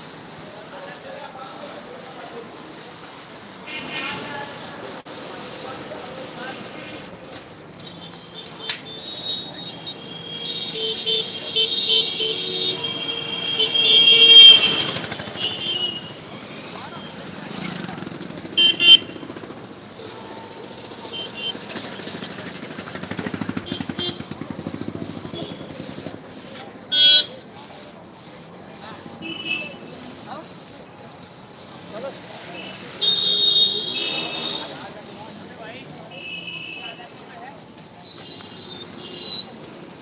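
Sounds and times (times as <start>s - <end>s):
people's voices: 0.0s - 40.0s
vehicle horns: 3.6s - 4.4s, 7.9s - 16.3s, 18.4s - 19.4s, 20.0s - 22.2s, 23.4s - 24.4s, 26.9s - 27.4s, 29.2s - 30.0s, 32.5s - 35.0s
motorcycles: 4.3s - 40.0s.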